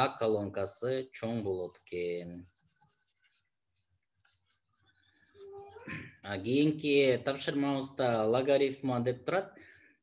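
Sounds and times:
stylus scratching and tapping tablet: 1.1s - 6.6s.

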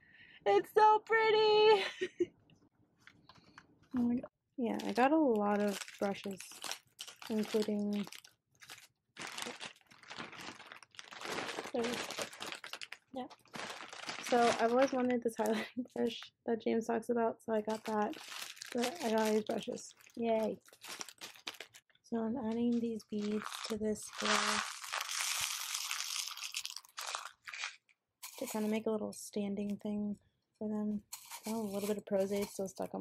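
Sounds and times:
plastic packaging crinkling: 4.7s - 16.2s, 17.6s - 21.9s, 22.6s - 28.8s, 31.0s - 32.9s
beads pouring into glass container: 24.2s - 28.7s, 31.1s - 32.6s.

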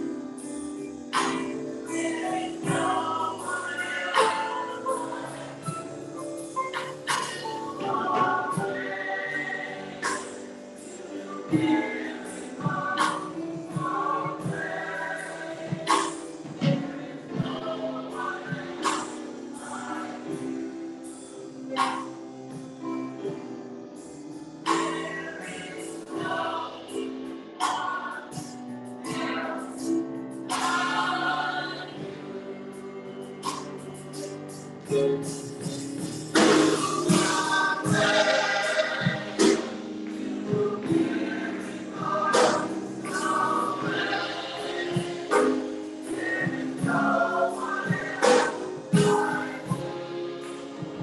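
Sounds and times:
choir singing: 0.0s - 51.0s
instruments playing along: 0.0s - 51.0s.

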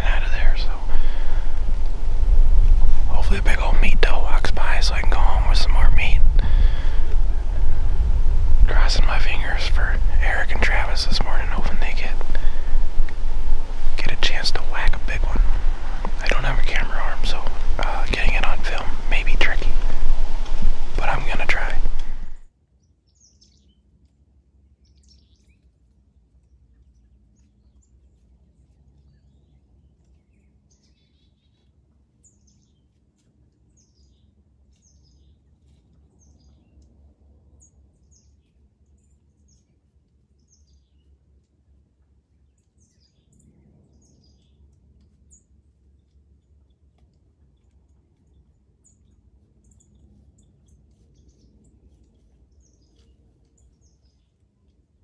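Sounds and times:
faint low rumble: 0.0s - 22.5s
songbird chirps: 0.0s - 55.0s.

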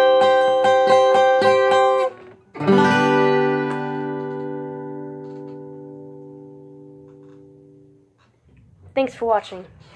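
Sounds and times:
acoustic guitar chord ringing: 0.0s - 8.1s.

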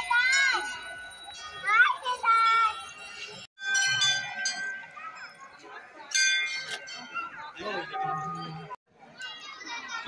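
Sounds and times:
temple bell ringing: 0.0s - 8.7s.

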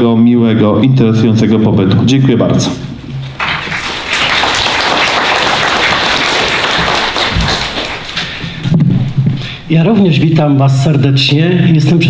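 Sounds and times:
audience applauding: 3.2s - 8.6s.

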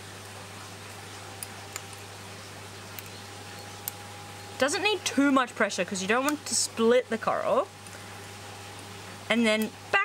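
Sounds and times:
equipment hum and hiss: 0.0s - 10.0s
faint handling clicks: 2.9s - 3.2s.

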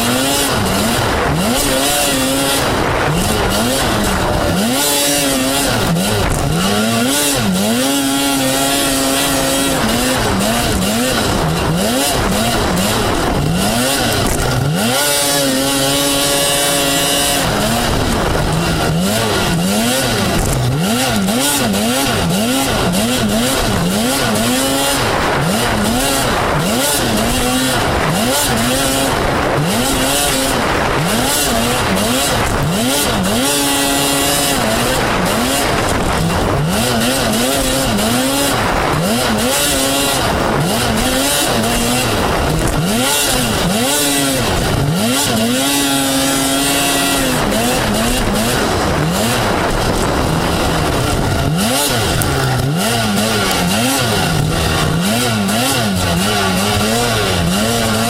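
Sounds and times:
snowmobile engine revving: 0.0s - 58.0s.

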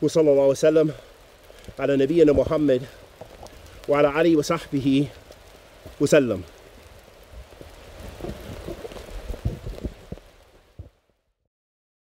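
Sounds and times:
rain in forest: 0.0s - 11.4s
low thumps near microphone: 7.3s - 11.0s.

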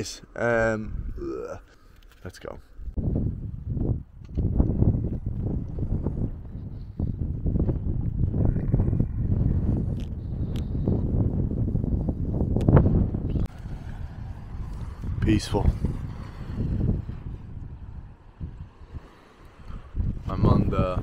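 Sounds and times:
wind buffeting microphone: 0.6s - 1.6s, 2.4s - 21.0s.

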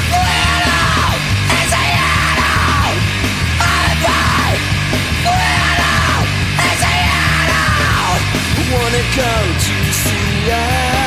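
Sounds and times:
punk rock band playing: 0.0s - 11.0s.

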